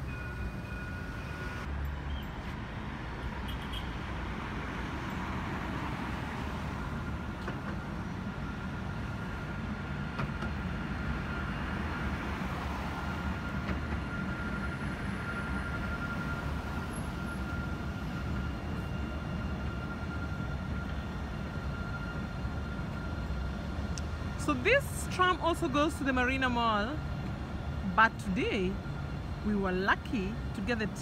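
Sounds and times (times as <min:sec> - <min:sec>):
tram passing rumble: 0:00.0 - 0:31.0.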